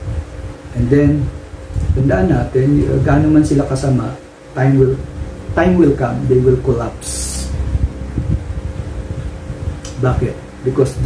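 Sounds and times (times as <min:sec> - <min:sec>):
fan humming: 0:00.0 - 0:11.0.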